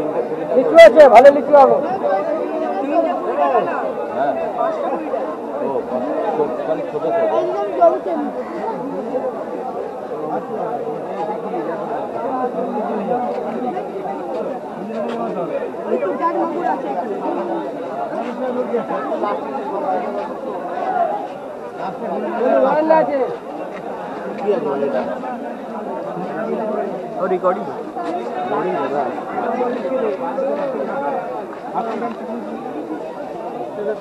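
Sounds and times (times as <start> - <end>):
chatter of many voices: 0.0 - 34.0.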